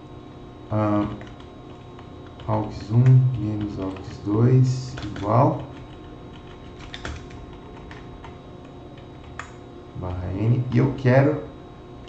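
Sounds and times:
typing on computer keyboard: 1.0s - 4.2s, 4.8s - 9.6s.

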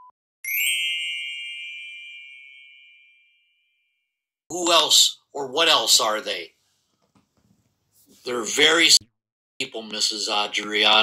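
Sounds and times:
bell ding: 0.5s - 3.8s.

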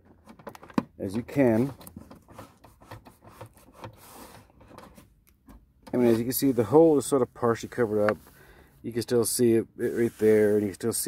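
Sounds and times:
tape scraping and rustling: 0.1s - 5.2s, 5.9s - 8.4s, 9.8s - 11.0s.

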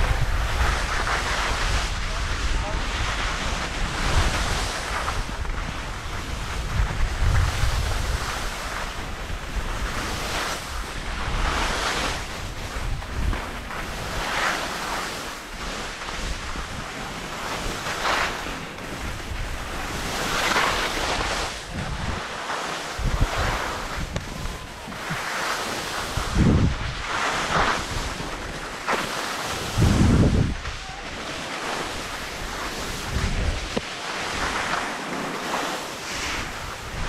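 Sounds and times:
skis scraping over snow: 0.0s - 37.0s
wind on microphone: 0.0s - 37.0s.

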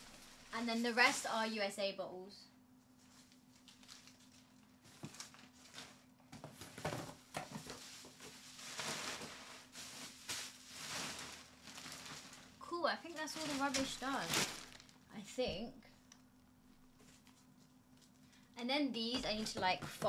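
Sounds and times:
plastic and paper rustling: 0.0s - 1.5s, 3.0s - 15.0s, 17.0s - 18.2s.

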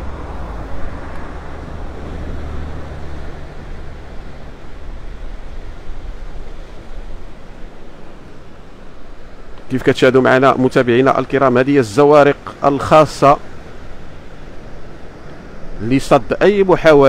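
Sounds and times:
faint drone of boats: 0.0s - 17.0s
surf washing: 0.0s - 17.0s
wind buffeting microphone: 0.0s - 17.0s.

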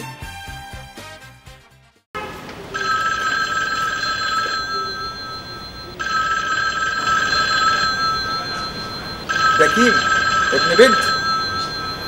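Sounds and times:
mobile phone ringtone: 2.8s - 12.0s.

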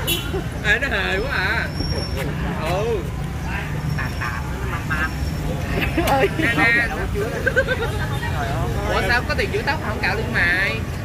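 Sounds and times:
motorbikes: 0.0s - 11.0s
street traffic rumble: 0.0s - 11.0s
people talking: 0.6s - 10.9s.

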